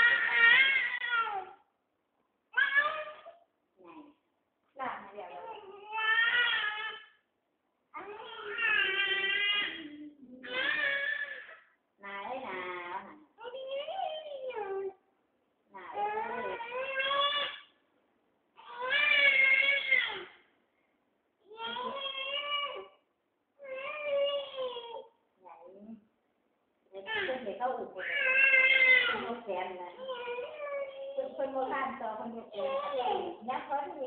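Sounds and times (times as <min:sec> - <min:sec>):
baby crying: 0:00.0 - 0:01.6, 0:05.4 - 0:07.2, 0:16.1 - 0:17.7, 0:18.6 - 0:20.4, 0:28.0 - 0:29.3, 0:30.0 - 0:31.4.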